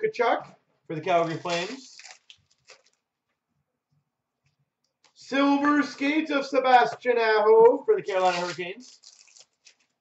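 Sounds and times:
trading cards rustling: 0:08.1 - 0:10.0.

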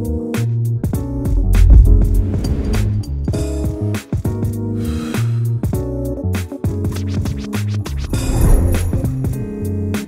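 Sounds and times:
background music with beat: 0:00.0 - 0:08.1
scratch-like noise: 0:01.2 - 0:03.1, 0:07.8 - 0:09.2.

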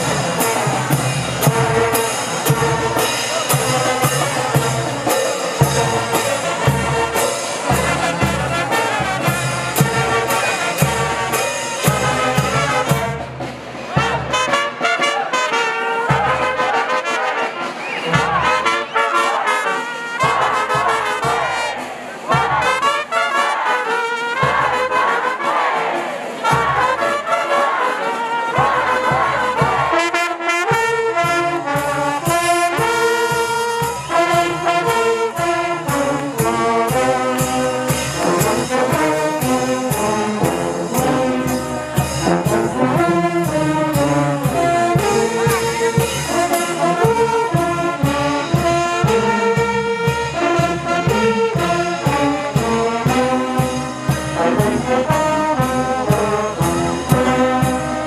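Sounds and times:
brass band playing: 0:00.0 - 0:58.0
bass drum beat: 0:22.3 - 0:22.8, 0:28.6 - 0:30.0.

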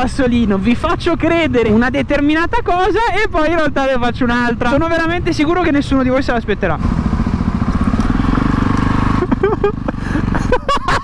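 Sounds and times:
motorcycle engine at low revs: 0:04.7 - 0:11.0.

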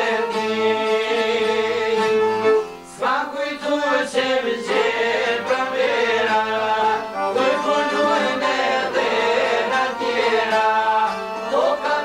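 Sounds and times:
man singing folk song: 0:00.0 - 0:12.0
plucked lute: 0:04.6 - 0:12.0.

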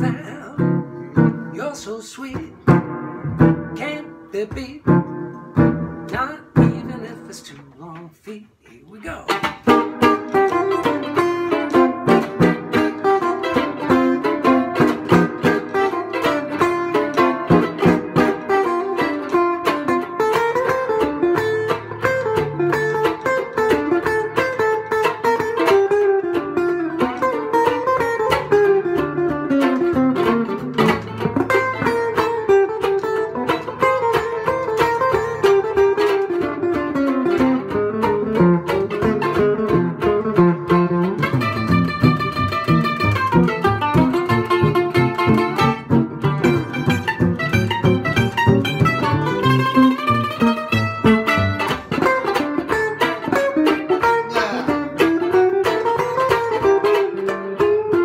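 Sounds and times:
mandolin melody: 0:00.0 - 0:58.0
guitar chord strokes: 0:09.5 - 0:58.0.

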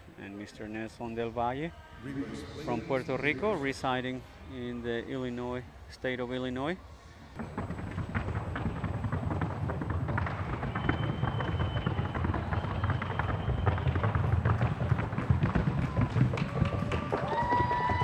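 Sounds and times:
light rapid hoof strikes: 0:07.4 - 0:18.0.

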